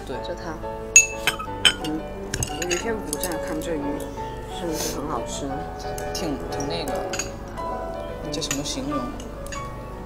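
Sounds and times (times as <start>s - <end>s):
background music: 0.0s - 10.0s
utensils clinking porcelain bowls: 1.0s - 4.1s, 4.8s - 7.5s, 8.2s - 9.7s.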